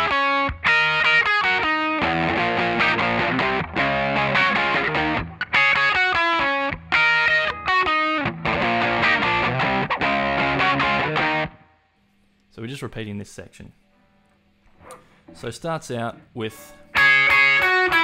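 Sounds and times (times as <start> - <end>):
overdriven electric guitar riff: 0.0 - 11.8, 16.8 - 18.0.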